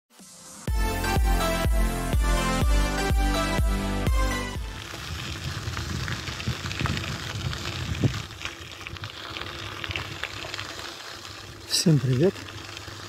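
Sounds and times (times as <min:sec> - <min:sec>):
outdoor hiss: 0:00.1 - 0:00.7
electronic music with beat: 0:00.2 - 0:04.8.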